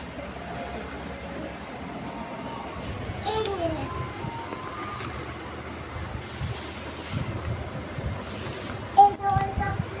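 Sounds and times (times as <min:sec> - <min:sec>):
cloth rustling: 0:03.7 - 0:09.0.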